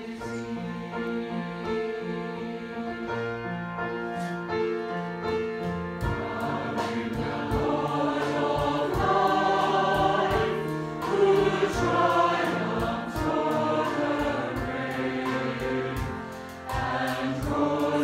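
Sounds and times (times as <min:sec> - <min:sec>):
choir singing in harmony: 0:00.0 - 0:18.0
percussion beat: 0:06.0 - 0:18.0.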